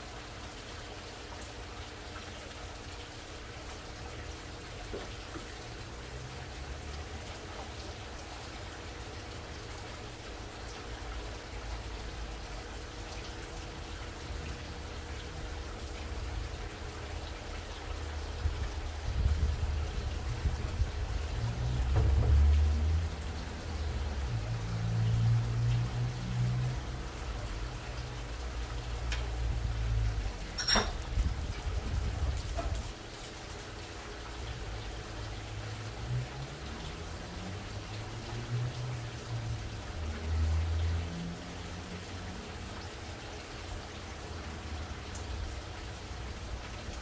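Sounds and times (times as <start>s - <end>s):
running water patter: 0.0s - 47.0s.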